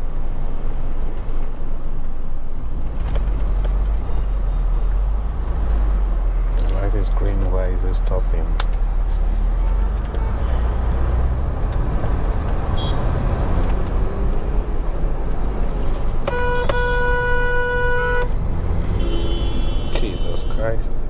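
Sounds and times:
road and engine rumble: 0:00.0 - 0:21.0
vehicle horn: 0:09.8 - 0:10.9, 0:12.7 - 0:13.1, 0:16.2 - 0:20.8.

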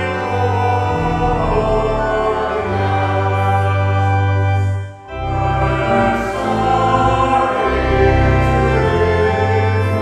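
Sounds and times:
congregation singing a hymn: 0:00.0 - 0:10.0
organ accompaniment: 0:00.0 - 0:10.0.

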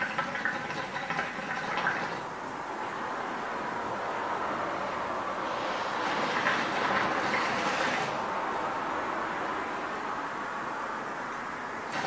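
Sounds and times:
hookah water bubbling: 0:00.0 - 0:02.4.

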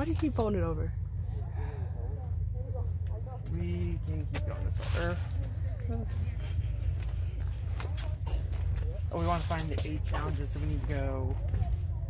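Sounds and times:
footsteps: 0:03.8 - 0:12.0.

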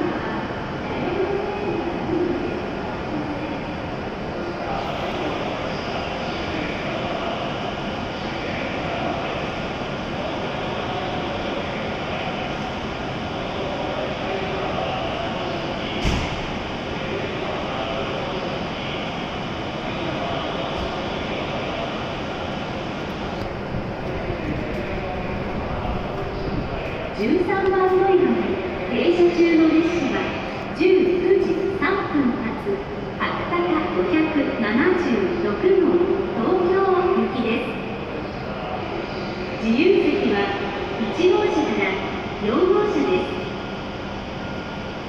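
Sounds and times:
echoing station hall noise: 0:00.0 - 0:45.0
train humming at platform: 0:00.0 - 0:45.0.

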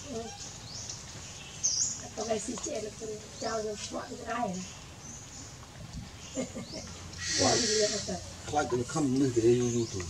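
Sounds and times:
macaque calls: 0:07.2 - 0:08.3.

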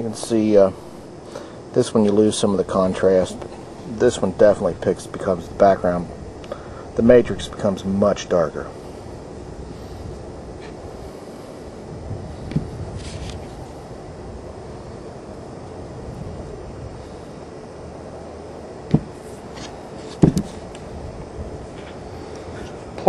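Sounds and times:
low background rumble: 0:00.0 - 0:23.0.

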